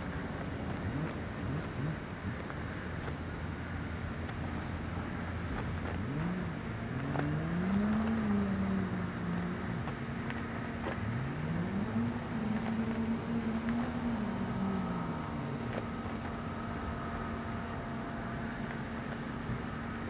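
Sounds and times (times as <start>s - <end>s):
vehicle engine accelerating: 0.0s - 20.0s.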